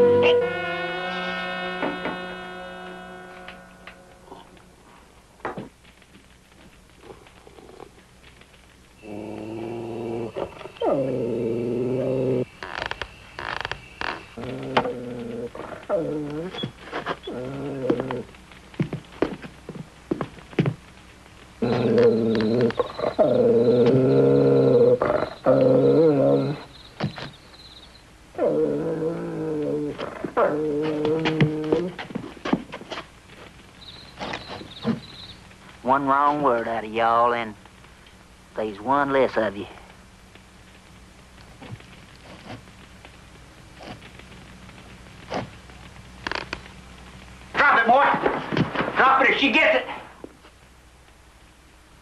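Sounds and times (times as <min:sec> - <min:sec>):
dog growling: 0:07.0 - 0:08.0, 0:09.0 - 0:12.8, 0:13.5 - 0:18.4, 0:21.6 - 0:26.7, 0:28.3 - 0:32.4, 0:41.5 - 0:42.7.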